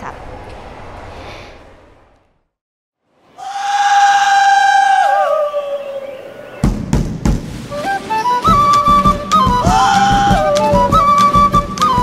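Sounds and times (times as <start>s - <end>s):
drum beats: 6.6s - 12.0s
held flute note: 7.7s - 12.0s.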